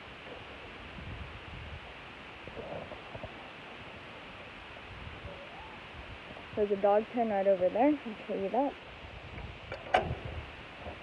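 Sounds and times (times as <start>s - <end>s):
steady hiss: 0.0s - 11.0s
microphone handling rumbles: 9.2s - 11.0s.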